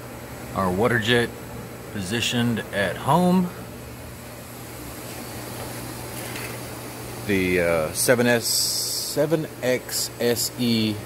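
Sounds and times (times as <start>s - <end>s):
shop machinery humming: 0.0s - 11.0s.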